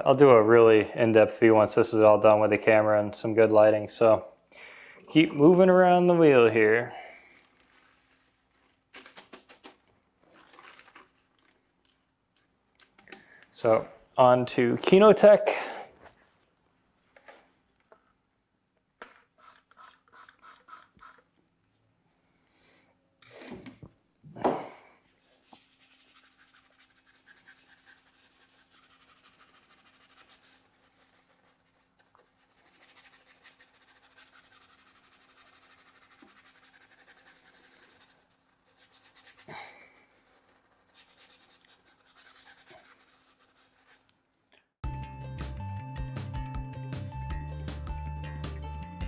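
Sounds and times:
brush scrubbing a wet wheel: 19.4 - 21.3, 25.2 - 44.1.

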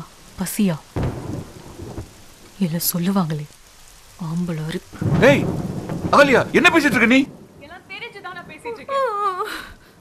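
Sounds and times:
steady rain: 0.0 - 10.0.

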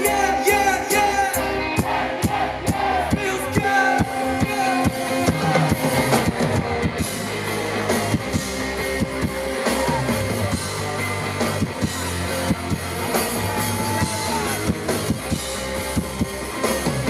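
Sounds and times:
bass line: 0.0 - 17.0
drum kit: 0.0 - 17.0
electric guitar: 0.0 - 17.0.

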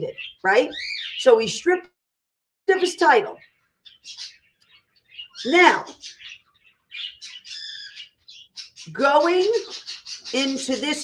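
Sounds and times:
bird chirping: 0.0 - 1.8, 3.0 - 11.0.

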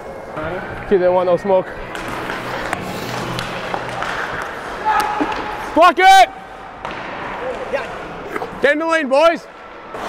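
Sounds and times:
crowd and rink noise: 0.0 - 10.0.

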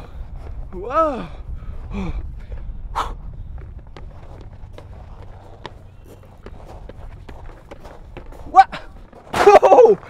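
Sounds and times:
footsteps on wooden beam: 1.6 - 10.0.

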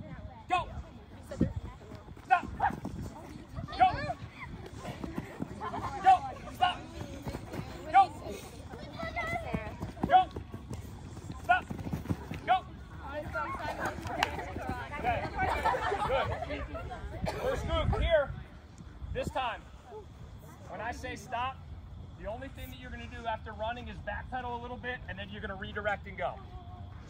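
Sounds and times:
voices chattering: 0.0 - 24.0
footsteps pattering on turf: 1.3 - 15.7.

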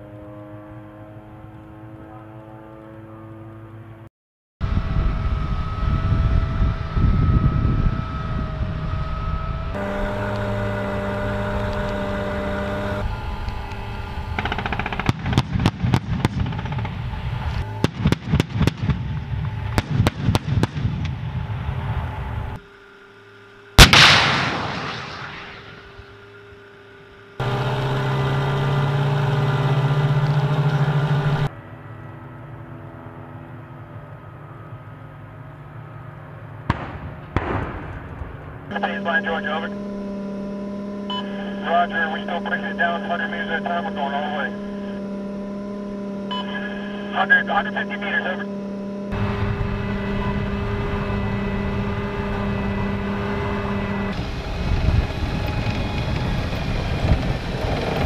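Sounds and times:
diesel engines whining: 0.0 - 58.0
automatic weapons fire: 14.4 - 17.0, 23.8 - 25.8, 36.7 - 38.2
loud blast: 23.8 - 26.0, 36.7 - 39.0.

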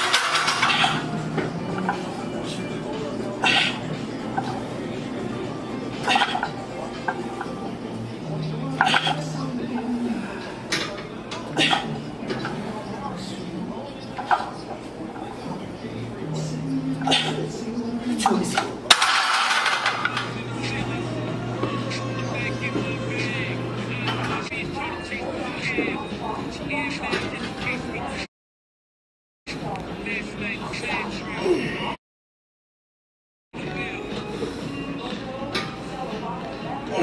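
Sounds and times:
indistinct voices: 0.0 - 28.3.

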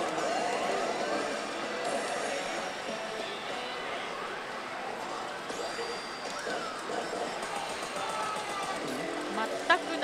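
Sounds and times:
slot machine sound effects: 5.5 - 10.0.

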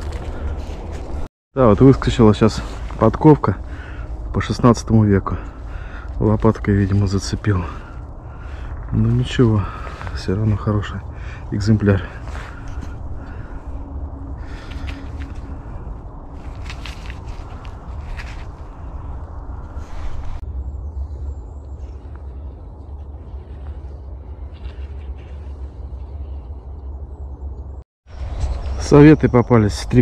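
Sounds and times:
low outdoor rumble: 0.0 - 30.0
brief rustling: 16.4 - 19.0.

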